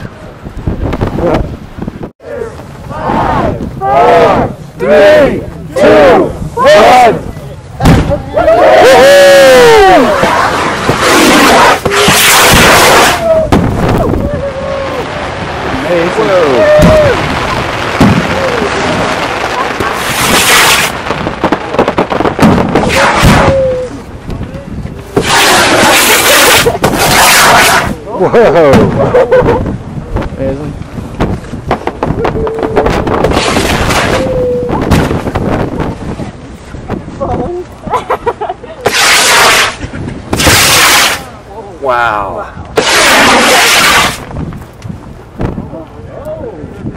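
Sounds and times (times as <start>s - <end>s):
fireworks bangs and crackle: 7.8s - 8.5s, 9.5s - 37.1s, 38.8s - 41.3s, 42.7s - 45.7s
people whooping and cheering: 8.1s - 10.6s, 12.9s - 15.3s, 16.2s - 17.4s, 22.9s - 24.1s, 32.2s - 33.0s, 34.0s - 34.9s.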